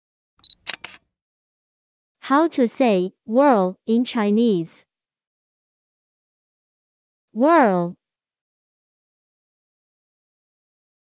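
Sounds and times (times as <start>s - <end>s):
sharp clicks: 0.4s - 1.0s.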